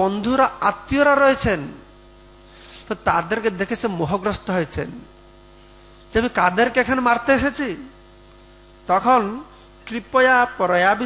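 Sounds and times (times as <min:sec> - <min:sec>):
man speaking into microphone: 0:00.0 - 0:01.9, 0:02.7 - 0:05.1, 0:06.1 - 0:08.0, 0:08.9 - 0:11.0
electrical mains hum: 0:00.0 - 0:11.0.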